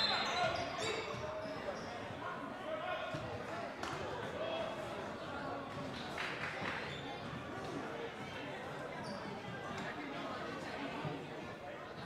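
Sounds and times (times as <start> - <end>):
indistinct voices and chatter: 0.0 - 12.0.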